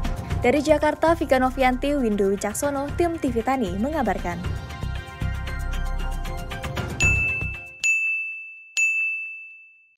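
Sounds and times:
bell-like chime: 0:07.0 - 0:10.0.

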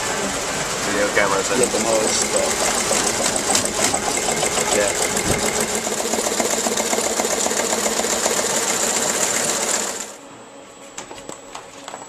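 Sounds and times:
small machine clattering: 0:01.4 - 0:10.1.

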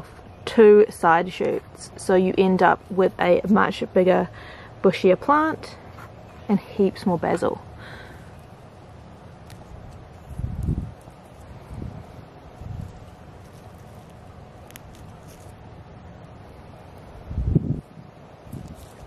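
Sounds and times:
leaves rustling: 0:00.0 - 0:19.0
outdoor hiss: 0:00.0 - 0:19.0
wind buffeting microphone: 0:09.6 - 0:13.5, 0:17.2 - 0:19.0.

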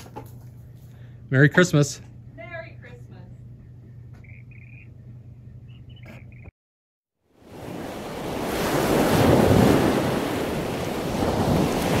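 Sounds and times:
quiet outdoor background: 0:00.0 - 0:06.5.

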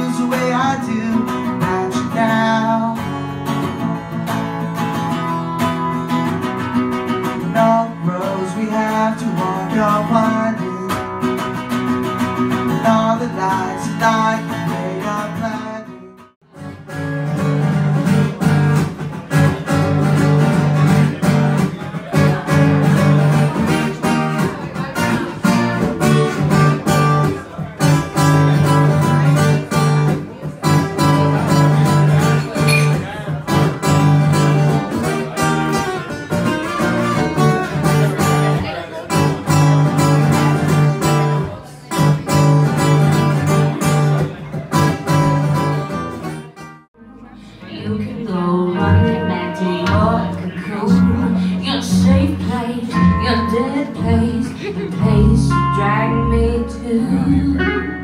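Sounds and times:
acoustic guitars playing: 0:00.0 - 0:58.0.

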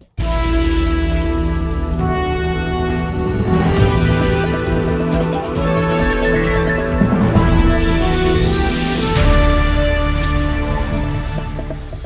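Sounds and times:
news programme theme music: 0:00.2 - 0:12.0.

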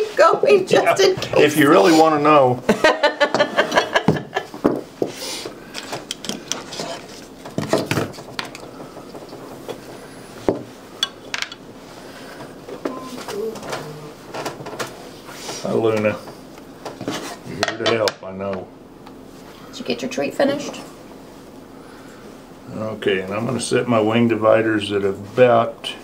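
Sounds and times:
people laughing: 0:02.6 - 0:04.6.

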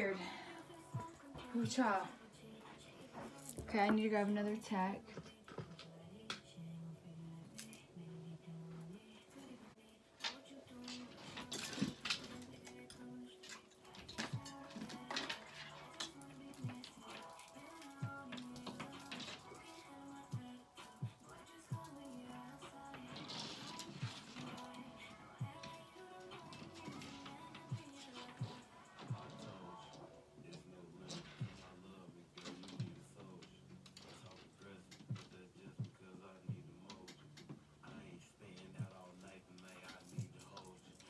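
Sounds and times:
faint background music: 0:00.0 - 0:41.0.

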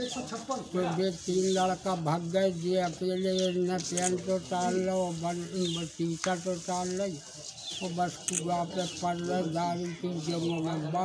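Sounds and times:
man talking: 0:00.0 - 0:07.2, 0:07.8 - 0:11.0.

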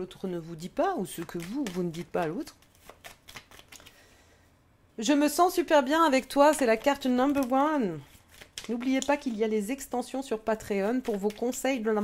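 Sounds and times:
cards being shuffled: 0:00.9 - 0:04.0, 0:06.4 - 0:09.4, 0:10.7 - 0:11.7.

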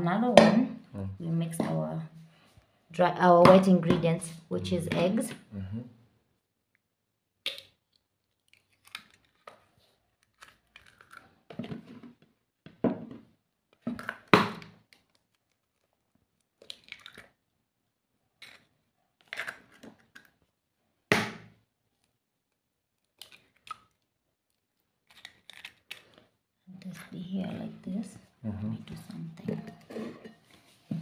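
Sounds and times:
shells crunching apart: 0:07.4 - 0:09.6, 0:10.2 - 0:11.4, 0:14.0 - 0:17.4, 0:25.0 - 0:26.3
eggshells cracking: 0:07.4 - 0:11.4, 0:14.0 - 0:17.4, 0:18.4 - 0:20.4, 0:23.0 - 0:24.0, 0:24.6 - 0:26.3.

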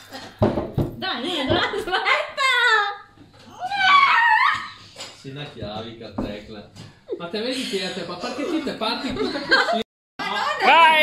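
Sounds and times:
woman squealing with effort: 0:03.5 - 0:04.8.

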